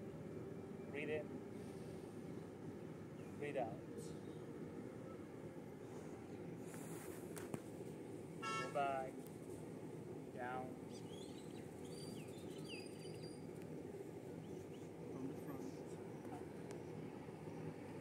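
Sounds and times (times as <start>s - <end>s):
faint high bird chirps: 10.9s - 13.6s.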